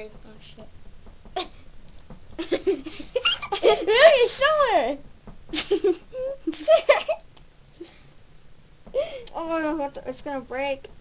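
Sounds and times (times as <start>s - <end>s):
person giggling: 2.4s - 4.2s, 5.5s - 7.2s.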